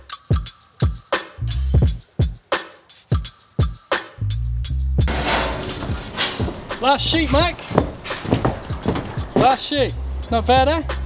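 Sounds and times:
background music: 0:00.0 - 0:11.0
metal sheet rattling: 0:05.1 - 0:09.7
steps on metal roof: 0:05.1 - 0:09.8.

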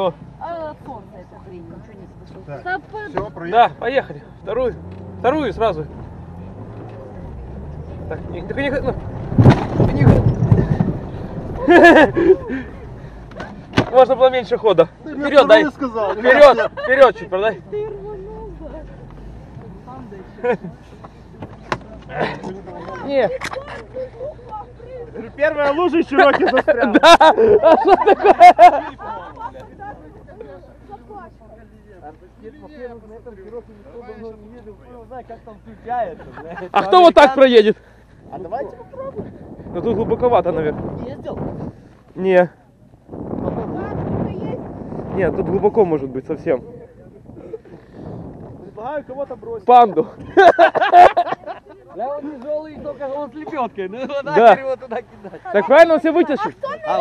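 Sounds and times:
vehicle engine running: 0:00.0 - 0:16.1
man talking: 0:31.8 - 0:39.0, 0:51.9 - 0:57.0.

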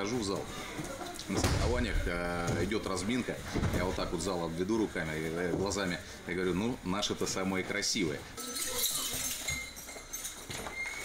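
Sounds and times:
dull thumps of throw: 0:01.3 - 0:02.8.

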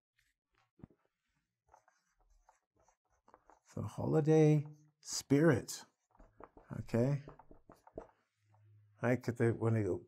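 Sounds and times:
marker squeaking on whiteboard: 0:00.8 - 0:05.1, 0:05.9 - 0:08.8.

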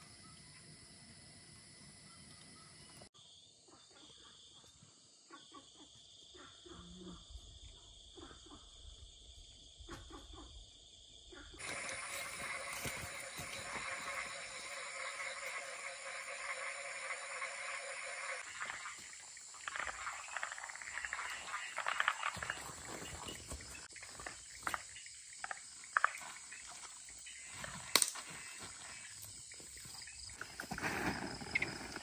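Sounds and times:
frogs calling: 0:11.3 - 0:30.7
high insect trill: 0:11.6 - 0:32.0.

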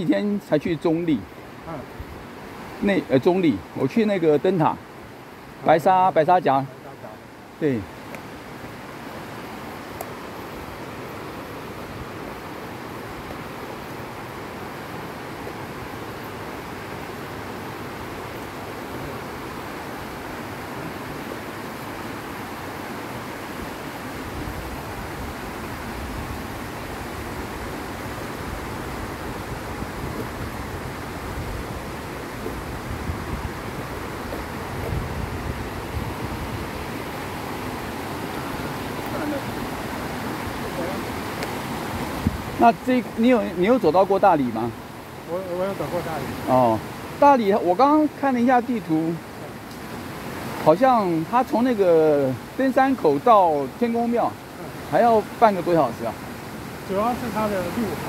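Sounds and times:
steady rushing outdoor noise: 0:00.0 - 0:58.0
wind rumble on microphone: 0:23.5 - 0:42.6.

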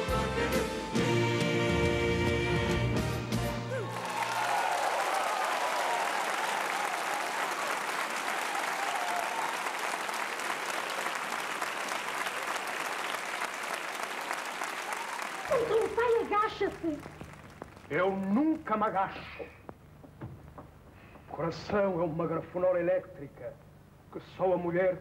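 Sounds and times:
old film soundtrack: 0:00.0 - 0:03.9
audience applauding: 0:03.7 - 0:18.9.

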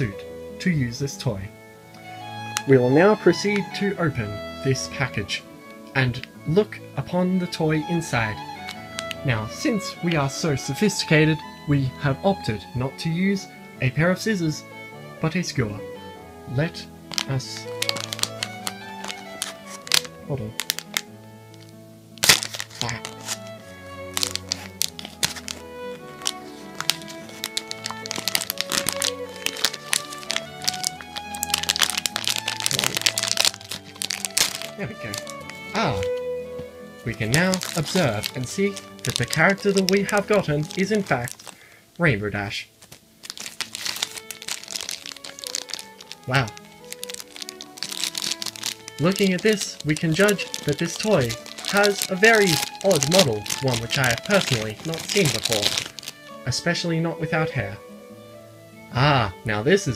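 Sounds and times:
violin music: 0:00.0 - 0:59.9
skewer crinkling plastic packet: 0:02.0 - 0:04.8, 0:05.7 - 0:06.3, 0:07.4 - 0:11.0, 0:17.0 - 0:36.3, 0:37.0 - 0:41.8, 0:42.8 - 0:56.4.

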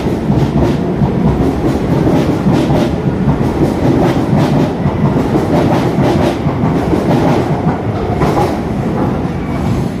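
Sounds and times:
metro train wheels on track: 0:00.0 - 0:10.0.

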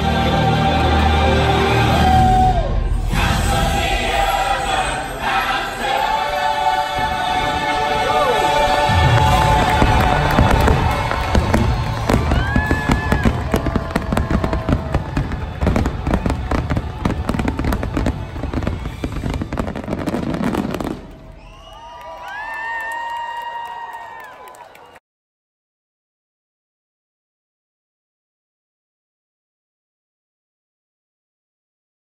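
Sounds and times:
loud show music: 0:00.0 - 0:20.9
fireworks bursting: 0:06.9 - 0:21.6.

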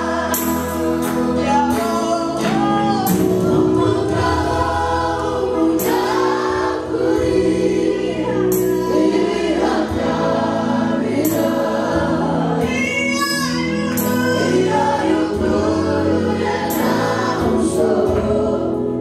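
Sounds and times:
group singing a gospel song: 0:00.0 - 0:19.0.

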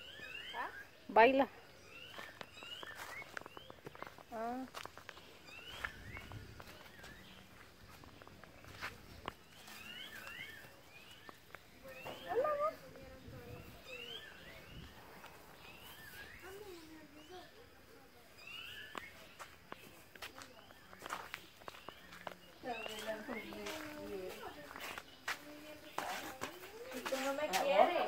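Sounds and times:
soft footsteps on dirt: 0:00.1 - 0:28.0.

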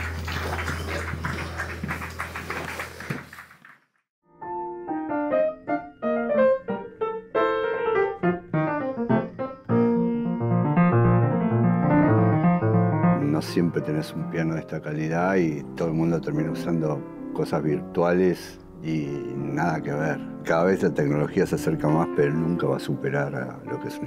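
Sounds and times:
small group applauding: 0:00.0 - 0:04.0
acoustic piano melody: 0:04.3 - 0:24.0.

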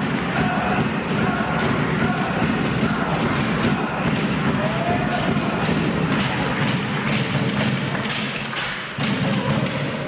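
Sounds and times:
music with percussive beat: 0:00.0 - 0:10.0.

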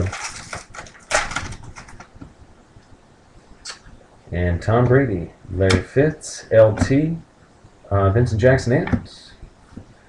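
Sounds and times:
foil wrapper tearing: 0:00.0 - 0:02.0.

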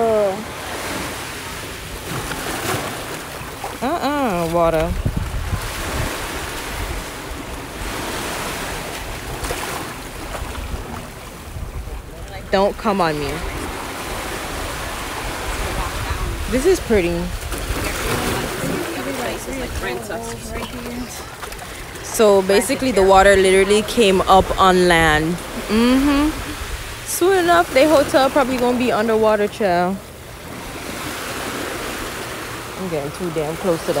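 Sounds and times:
voices: 0:00.0 - 0:00.6, 0:03.6 - 0:05.0, 0:11.8 - 0:30.1, 0:32.7 - 0:34.0
small wave washing on sand: 0:00.0 - 0:25.7, 0:26.4 - 0:34.0.

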